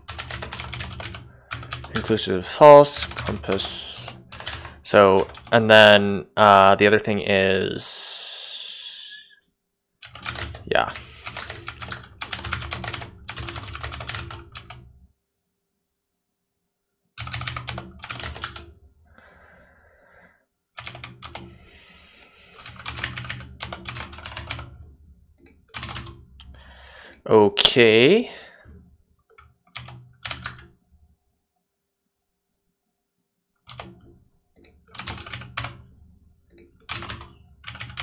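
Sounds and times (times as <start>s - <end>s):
typing on computer keyboard: 0.0s - 2.3s, 2.9s - 5.6s, 10.0s - 14.9s, 17.2s - 18.7s, 20.8s - 21.6s, 22.5s - 27.2s, 28.6s - 30.8s, 33.7s - 35.8s, 36.5s - 38.0s.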